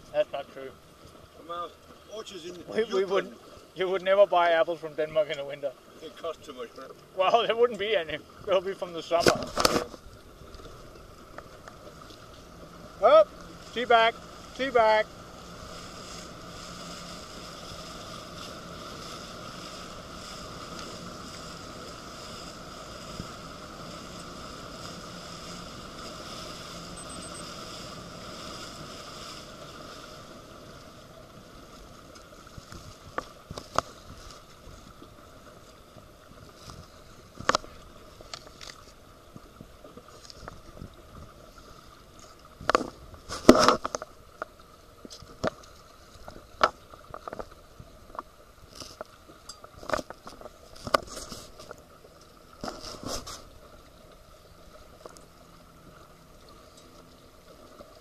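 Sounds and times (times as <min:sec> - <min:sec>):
small boat motor droning: 0:00.0 - 0:58.0.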